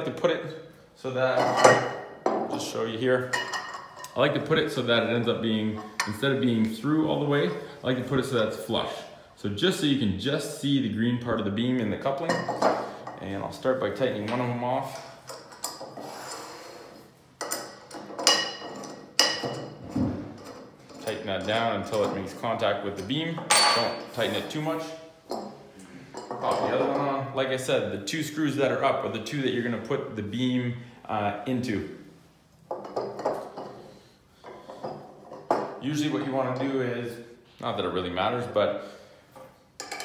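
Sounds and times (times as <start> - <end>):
soft metal scrape: 15.8 - 17.2, 24.1 - 25.0.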